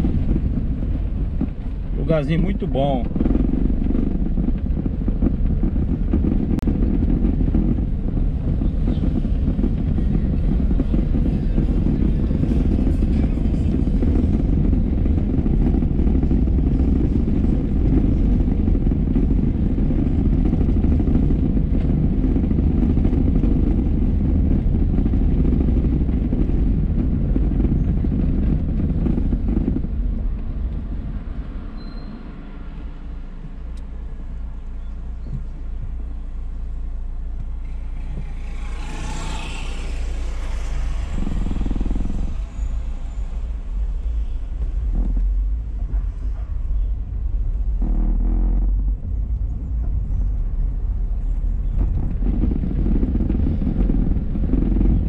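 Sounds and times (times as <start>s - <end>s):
car engine and tyres rumbling: 0.0s - 55.0s.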